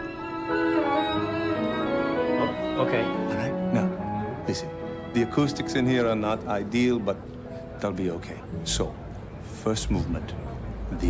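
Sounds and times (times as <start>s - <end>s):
violin playing held notes: 0.0s - 6.2s.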